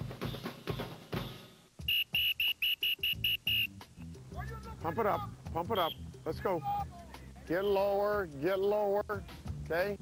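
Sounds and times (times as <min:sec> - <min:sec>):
music with steady drumbeat: 0:00.0 - 0:10.0
sports whistle blasts: 0:01.8 - 0:03.8, 0:05.7 - 0:06.1, 0:07.6 - 0:08.0.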